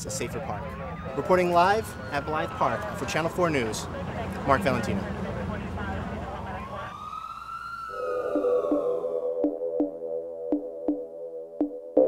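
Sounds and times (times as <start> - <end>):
siren wailing: 0.0 - 10.0
synthesizer music pulsing: 7.9 - 12.0.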